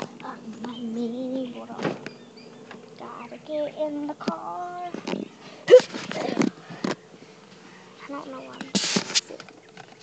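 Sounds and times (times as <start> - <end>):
scraping and rustling: 8.6 - 10.0.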